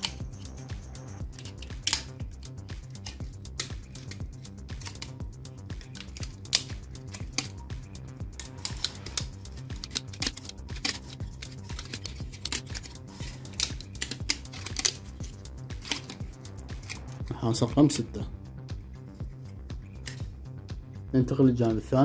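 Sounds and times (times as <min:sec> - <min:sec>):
wire ticking and scratching: 0:00.0 - 0:17.3
soft background music: 0:00.0 - 0:22.0.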